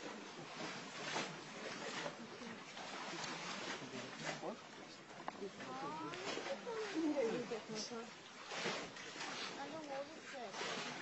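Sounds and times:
people talking indistinctly: 0:01.1 - 0:08.2, 0:09.4 - 0:10.8.

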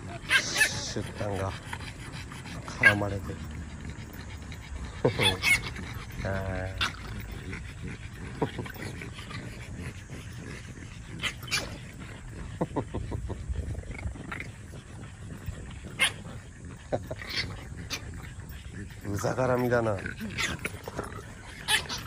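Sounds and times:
dog yelps: 0:00.0 - 0:01.5, 0:02.6 - 0:07.3, 0:15.4 - 0:18.4, 0:19.2 - 0:22.0
puppy growling and yapping: 0:00.0 - 0:22.0.

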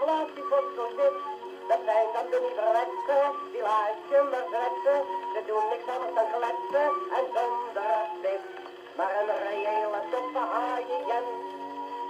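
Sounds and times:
gramophone playing sung song: 0:00.0 - 0:12.0.

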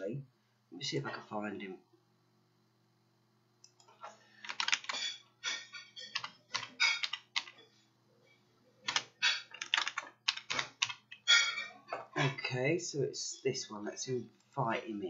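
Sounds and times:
computer keyboard typing: 0:03.6 - 0:05.0, 0:06.0 - 0:07.6, 0:08.9 - 0:11.2.

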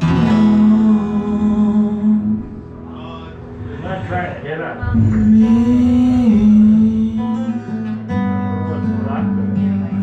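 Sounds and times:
strummed acoustic guitar: 0:00.0 - 0:10.0
man singing a held note: 0:04.8 - 0:07.9.

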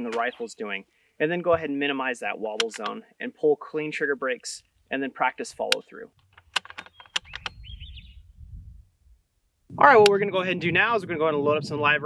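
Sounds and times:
rifle bolt and trigger clicks: 0:02.6 - 0:03.0, 0:05.7 - 0:07.6.

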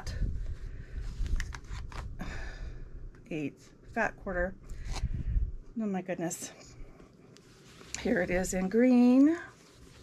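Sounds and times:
fabric rustling: 0:07.2 - 0:10.0.

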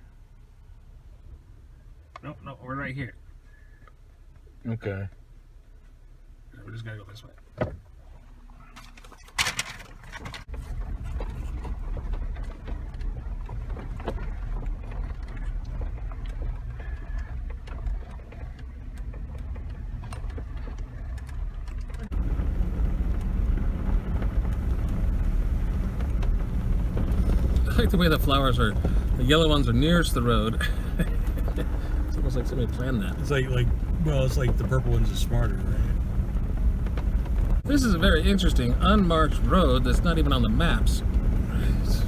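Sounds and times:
engine and tyres rumbling: 0:00.0 - 0:42.0
knocks and rattles from bumps: 0:08.7 - 0:42.0.

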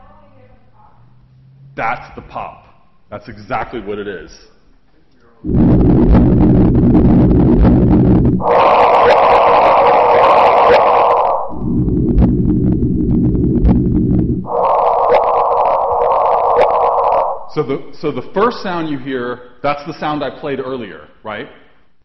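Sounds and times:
low rumbling detector noise: 0:05.4 - 0:18.0.

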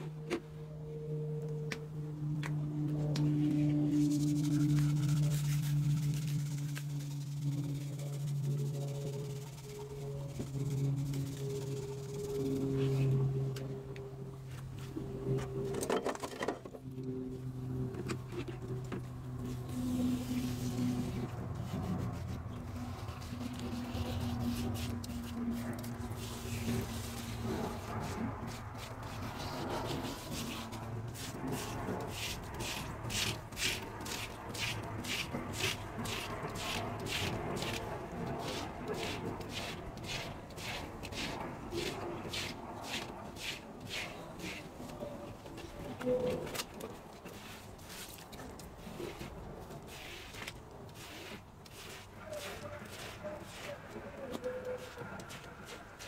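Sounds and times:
slow sustained music tones: 0:00.0 - 0:15.8.

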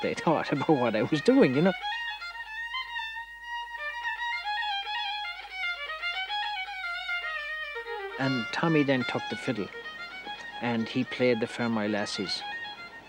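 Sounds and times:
solo fiddle playing slow tune: 0:00.0 - 0:13.0.

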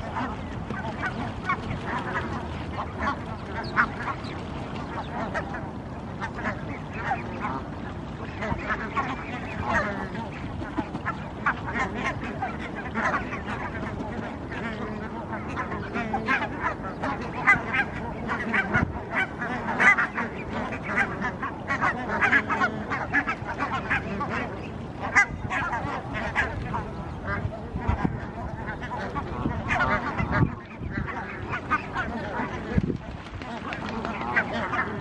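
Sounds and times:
birds honking in chorus: 0:00.0 - 0:05.6.

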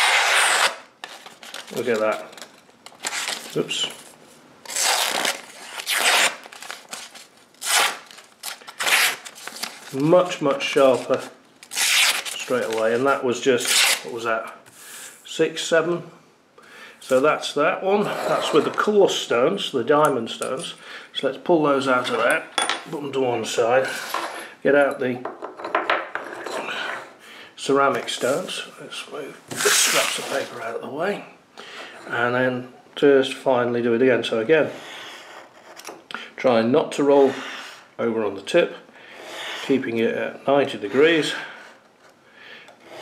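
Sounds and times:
paper rustling: 0:01.0 - 0:10.2.

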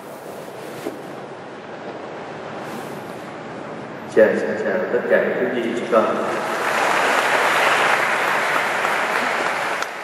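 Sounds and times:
congregation clapping: 0:06.2 - 0:10.0.

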